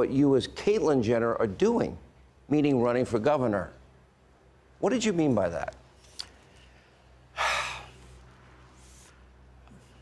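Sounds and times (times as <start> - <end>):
person sighing: 7.4 - 8.0.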